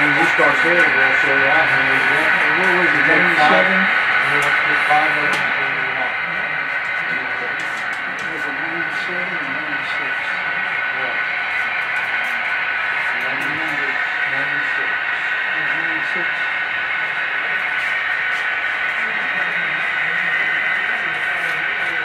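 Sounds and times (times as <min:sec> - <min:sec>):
people talking indistinctly: 0:00.0 - 0:22.0.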